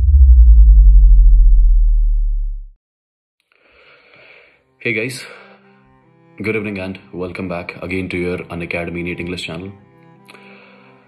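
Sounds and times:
deep sub-bass hum sliding down: 0:00.0 - 0:02.8.

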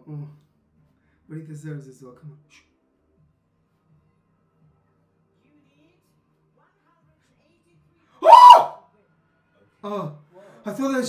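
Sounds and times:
man saying oh: 0:08.2 - 0:08.6
man yelping in surprise: 0:08.2 - 0:08.8.

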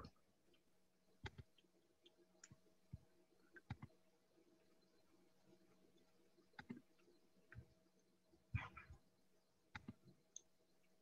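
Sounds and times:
computer mouse clicks: 0:01.2 - 0:02.6, 0:03.6 - 0:04.0, 0:06.6 - 0:06.8, 0:09.7 - 0:10.5.

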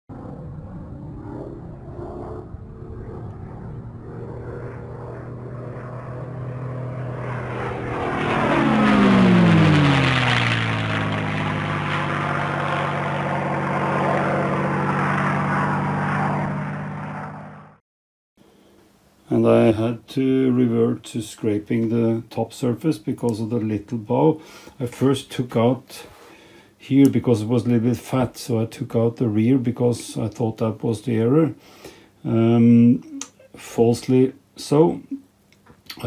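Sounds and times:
engine-like drone: 0:00.1 - 0:17.8.

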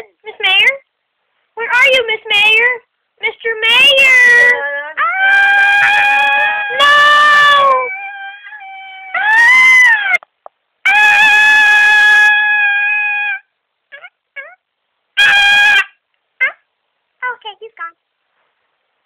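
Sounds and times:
loud high-pitched vocal cries: 0:04.0 - 0:10.2, 0:10.8 - 0:14.6, 0:15.2 - 0:16.6.

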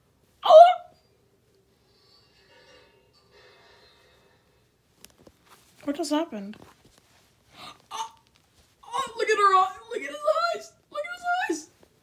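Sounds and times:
person's wordless vocal cry: 0:07.6 - 0:08.2.

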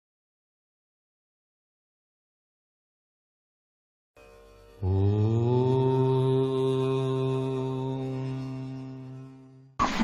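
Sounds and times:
low chanted note: 0:04.2 - 0:09.8.

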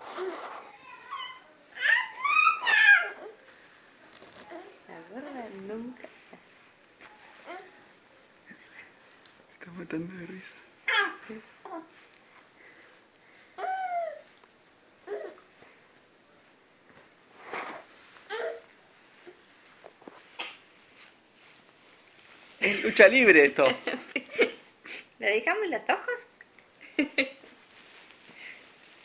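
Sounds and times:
baby squealing: 0:01.1 - 0:03.3.

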